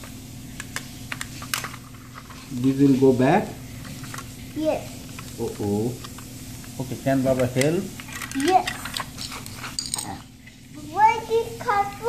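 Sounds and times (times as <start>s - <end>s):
plastic toy bricks clicking: 7.5s - 9.1s.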